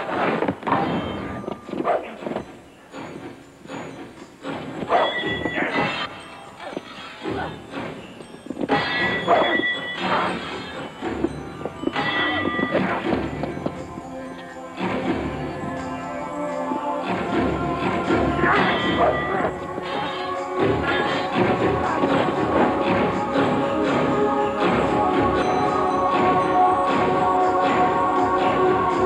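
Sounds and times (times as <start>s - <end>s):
music: 0.0s - 29.0s.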